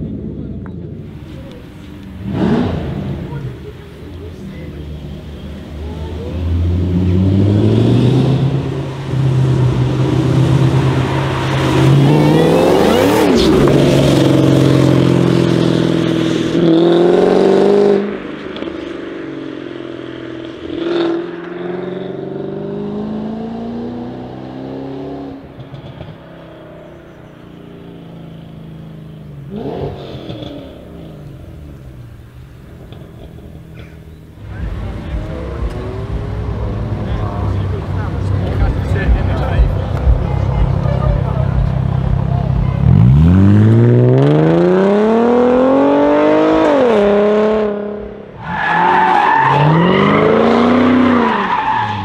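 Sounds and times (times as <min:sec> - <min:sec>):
car engine revving hard: 0:02.2 - 0:04.4, 0:05.7 - 0:18.9, 0:19.5 - 0:26.4, 0:27.8 - 0:31.8, 0:34.4 - 0:52.0.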